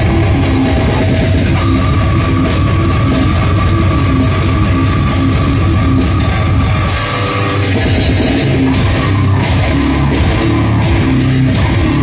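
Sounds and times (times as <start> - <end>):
bass guitar: 0.0 - 12.0
distorted guitars: 0.0 - 12.0
pounding drum kit: 0.0 - 12.0.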